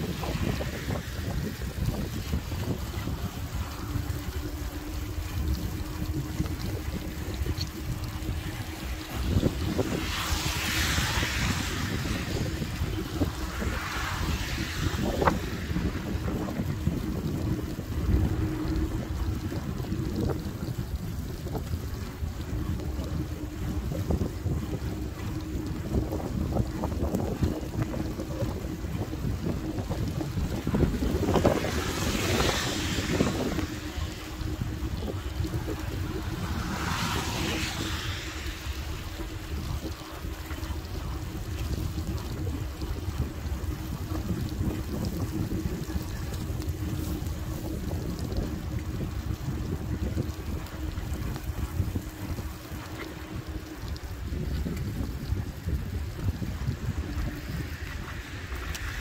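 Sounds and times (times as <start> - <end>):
bicycle tyres on wet path: 0.0 - 59.0
steady low hum: 0.0 - 59.0
wind buffeting microphone: 0.0 - 59.0.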